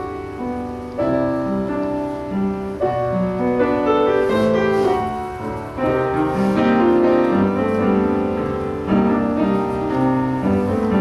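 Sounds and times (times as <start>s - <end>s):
slow classical piano: 0.0s - 11.0s.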